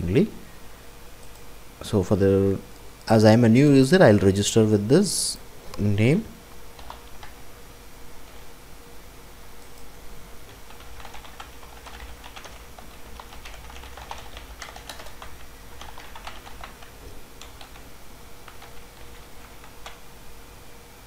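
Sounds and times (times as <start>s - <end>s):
faint steady hum: 0.0s - 21.0s
computer keyboard typing: 6.8s - 7.4s, 9.6s - 20.0s.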